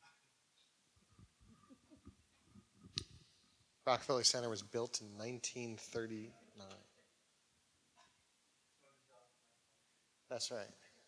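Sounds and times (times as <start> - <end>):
man talking: 3.8 - 7.0, 10.3 - 11.0.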